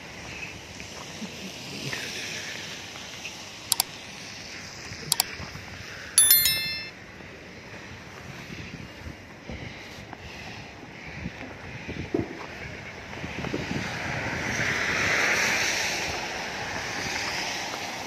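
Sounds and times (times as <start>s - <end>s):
ringing bell chime: 6.2s - 7.0s.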